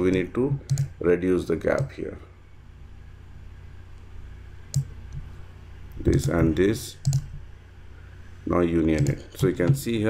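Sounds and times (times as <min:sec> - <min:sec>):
computer mouse clicking: 0:00.0 - 0:00.9, 0:01.7 - 0:01.9, 0:04.7 - 0:07.4, 0:08.9 - 0:09.9
low steady hum: 0:00.0 - 0:10.0.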